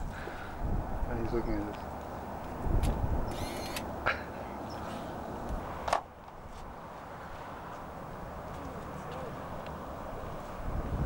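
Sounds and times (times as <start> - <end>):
outdoor background hiss: 0.0 - 11.0
camera click: 2.8 - 3.9
camera motor whirring: 3.3 - 3.9.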